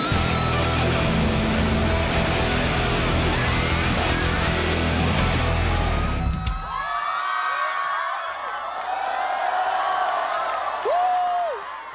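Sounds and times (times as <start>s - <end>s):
distorted electric guitar: 0.0s - 6.6s
rock drums: 0.0s - 6.8s.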